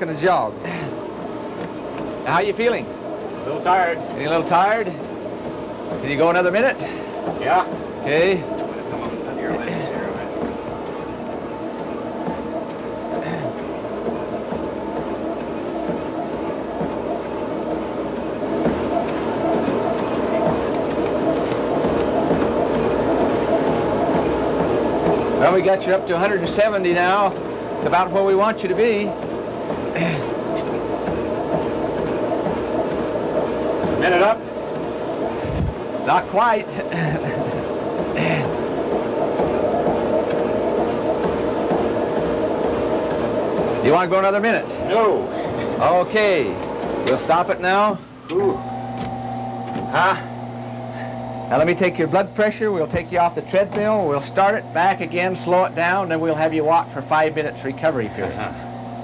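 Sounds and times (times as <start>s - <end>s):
treadmill running: 0.0s - 59.0s.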